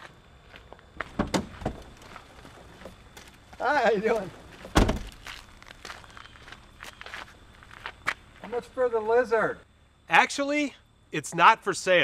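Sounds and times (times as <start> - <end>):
footsteps on gravel: 0.0 - 8.6.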